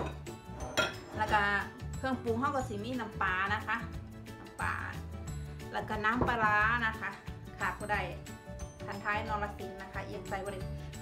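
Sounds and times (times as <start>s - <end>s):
glassware clinking: 0.0s - 1.2s
background music: 0.0s - 11.0s.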